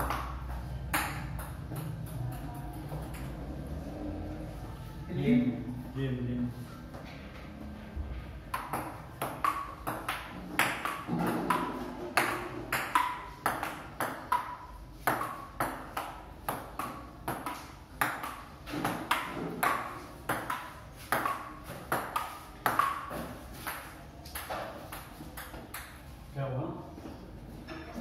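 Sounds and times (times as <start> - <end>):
ball bouncing on table: 0.0 - 3.4, 8.5 - 26.0
ping pong ball hits: 0.0 - 3.4, 8.5 - 26.1.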